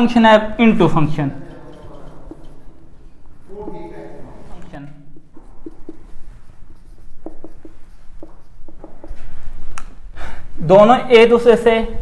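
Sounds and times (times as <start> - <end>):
marker writing on whiteboard: 1.4 - 10.2.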